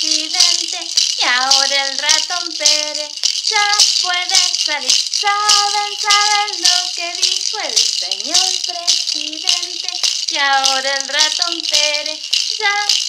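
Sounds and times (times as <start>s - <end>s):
plastic maraca shaken: 0.0s - 13.0s
woman singing children's song: 0.0s - 13.0s.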